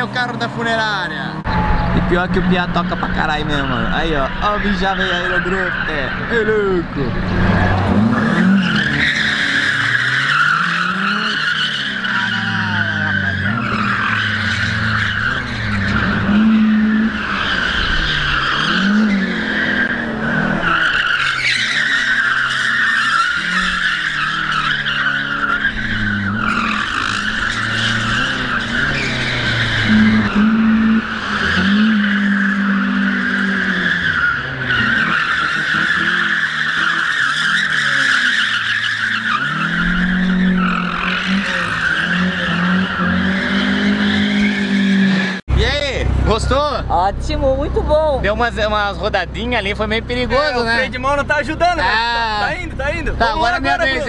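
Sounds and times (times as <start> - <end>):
tyres squealing: 0.0 - 45.4, 48.2 - 54.0
car engine revving: 0.0 - 54.0.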